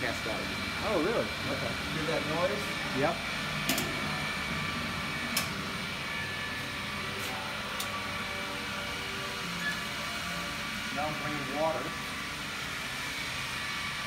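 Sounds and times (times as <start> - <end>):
pump mechanical hum: 0.0 - 14.0.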